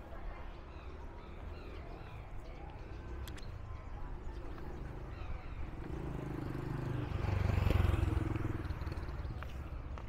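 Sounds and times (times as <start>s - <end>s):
street background noise: 0.0s - 10.0s
motorcycle engine passing: 4.5s - 9.8s.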